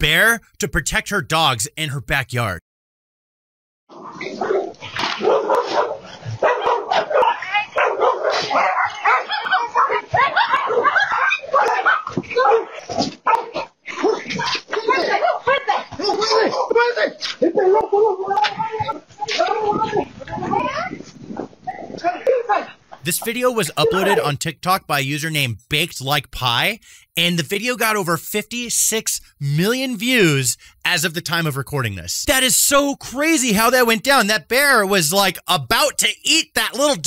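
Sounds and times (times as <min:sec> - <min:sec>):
person's voice: 0:00.0 - 0:02.6, 0:23.0 - 0:37.0
dogs barking and yipping: 0:04.0 - 0:18.9, 0:23.8 - 0:24.2.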